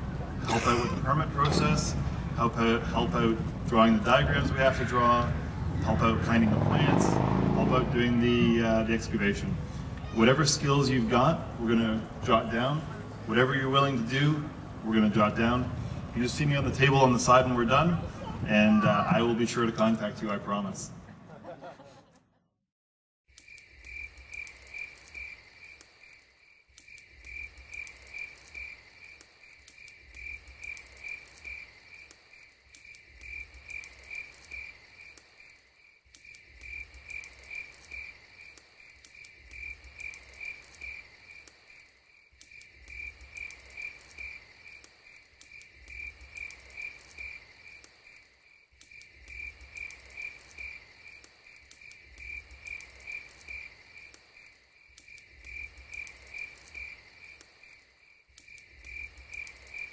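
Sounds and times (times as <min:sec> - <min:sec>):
crickets chirping: 0:23.3 - 0:59.9.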